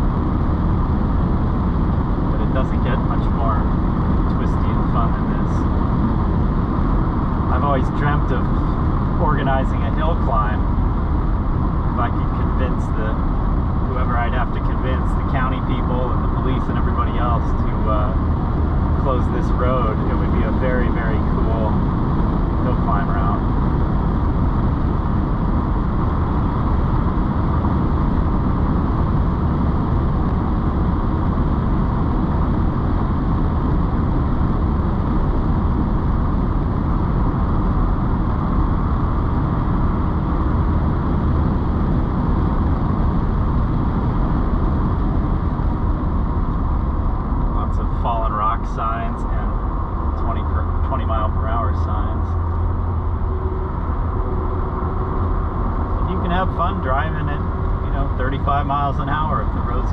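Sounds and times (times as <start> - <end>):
car engine drone: 0.0 - 59.9
road and tyre noise: 0.0 - 59.9.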